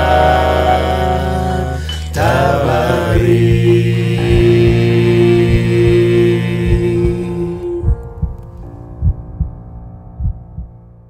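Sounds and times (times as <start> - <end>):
low musical chord: 0.0 - 10.6
heartbeat thumps: 3.1 - 9.6, 10.2 - 10.7.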